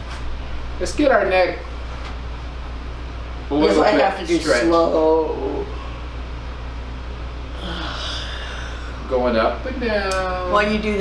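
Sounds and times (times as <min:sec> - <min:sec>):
steady low hum: 0:00.0 - 0:11.0
person exhaling breathily: 0:07.6 - 0:09.1.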